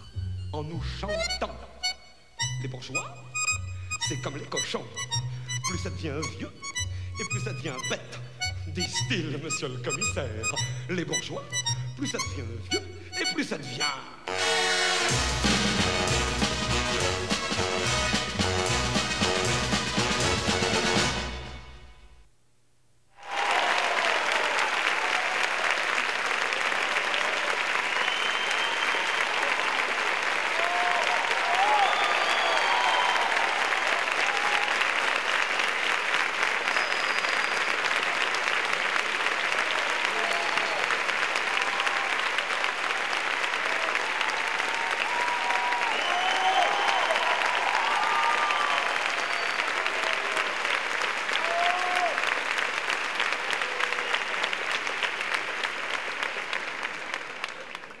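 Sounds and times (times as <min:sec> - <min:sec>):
audience applauding: 0:23.2 - 0:58.0.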